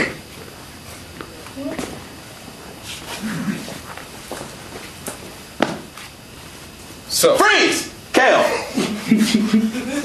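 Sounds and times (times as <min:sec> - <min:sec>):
footsteps and shuffles on stage: 0:00.3 - 0:06.8.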